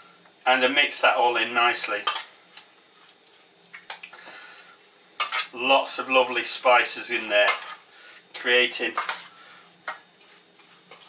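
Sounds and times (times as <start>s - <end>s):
hands mixing raw meat in bowl: 8.4s - 11.0s.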